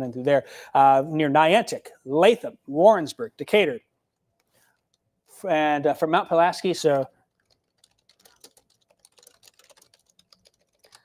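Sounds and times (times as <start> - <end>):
typing on computer keyboard: 7.3 - 11.0.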